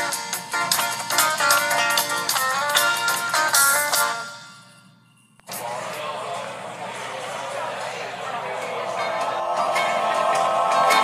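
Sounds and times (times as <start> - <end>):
guitar music: 0.0 - 4.2
noisy background: 0.0 - 11.0
faint voices: 5.5 - 11.0.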